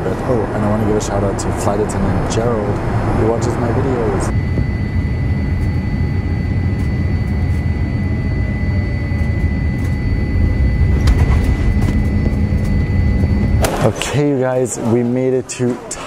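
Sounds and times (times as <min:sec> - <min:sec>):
jet engine and airflow rumble: 0:00.0 - 0:16.0
thin steady whine: 0:00.0 - 0:16.0.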